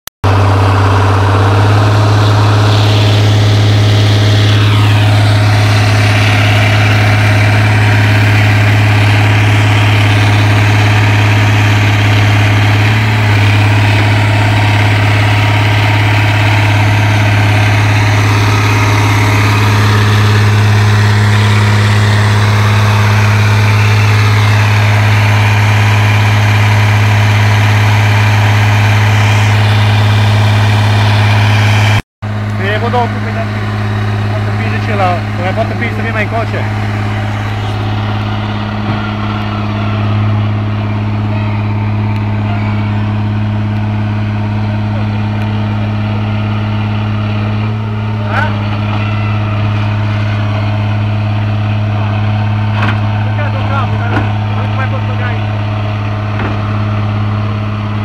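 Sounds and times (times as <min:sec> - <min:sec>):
diesel engine idling: 0:00.2 - 0:58.0.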